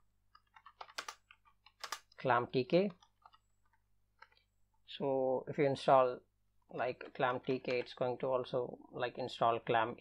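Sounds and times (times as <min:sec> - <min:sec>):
computer keyboard typing: 0:00.4 - 0:02.2.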